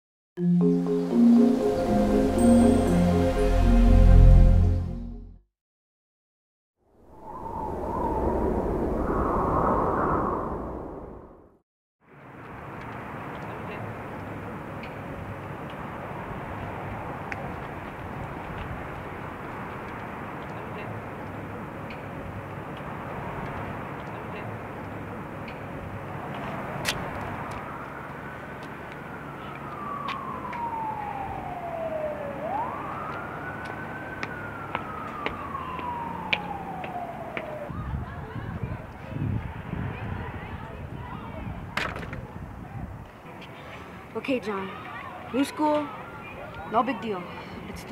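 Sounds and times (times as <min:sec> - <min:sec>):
rumbling whoosh: 0:07.0 - 0:11.6
street noise: 0:12.1 - 0:47.9
emergency vehicle siren wailing: 0:27.0 - 0:37.8.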